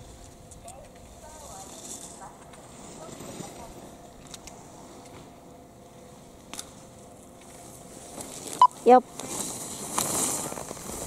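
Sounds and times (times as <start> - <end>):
skis hissing on snow: 1.2 - 3.9, 9.2 - 11.0.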